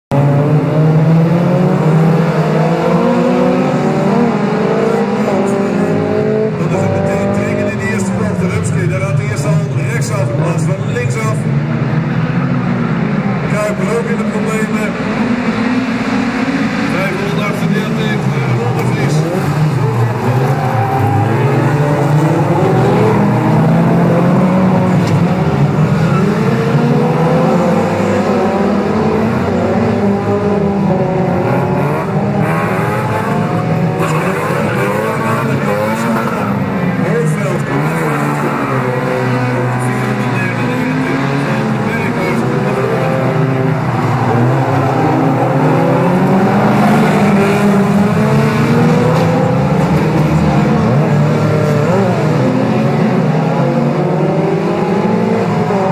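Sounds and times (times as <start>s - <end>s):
race car engines revving: 0.1s - 55.9s.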